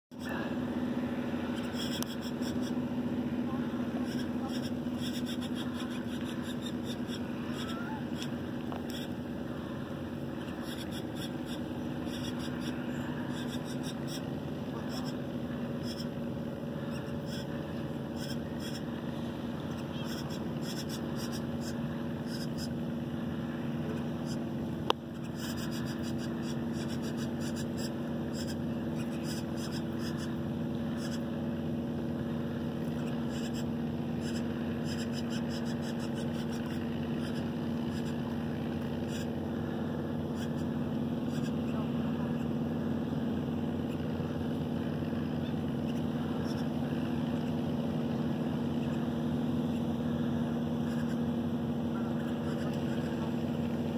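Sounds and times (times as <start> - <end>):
engine hum: 0.0 - 53.9.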